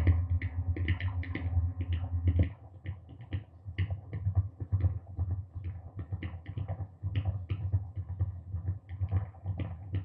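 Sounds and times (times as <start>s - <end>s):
pulsing low hum: 0.0s - 0.8s
irregular clicking and tapping: 0.0s - 10.0s.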